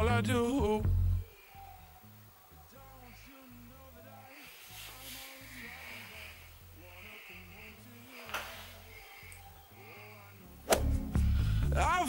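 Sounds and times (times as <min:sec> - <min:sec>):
steady bass line: 0:00.0 - 0:01.2, 0:10.8 - 0:12.0
soft breathy hiss: 0:01.1 - 0:11.8.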